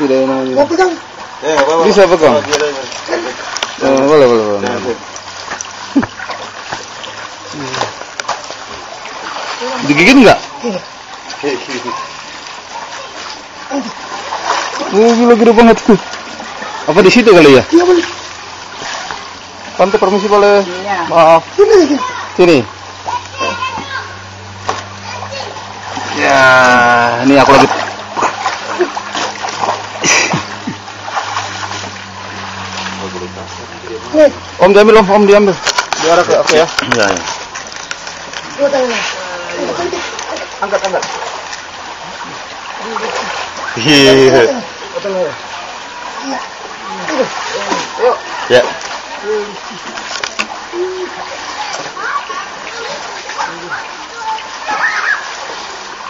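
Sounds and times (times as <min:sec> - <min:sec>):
shallow water splashing and sloshing: 0:00.0 - 0:56.0
water dripping: 0:00.0 - 0:56.0.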